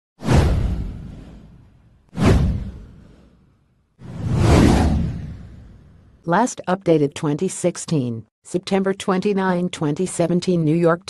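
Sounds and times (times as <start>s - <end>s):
whoosh with low rumble: 0.2s - 6.2s.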